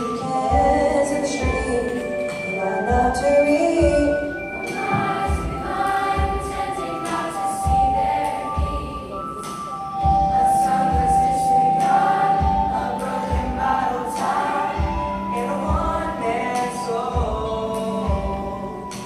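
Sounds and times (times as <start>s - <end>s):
low beat of accompaniment: 0.0s - 19.0s
youth choir singing in harmony: 0.0s - 19.0s.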